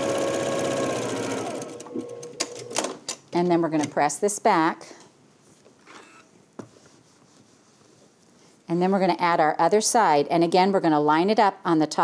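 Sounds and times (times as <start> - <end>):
faint handling sounds: 4.9 - 9.0.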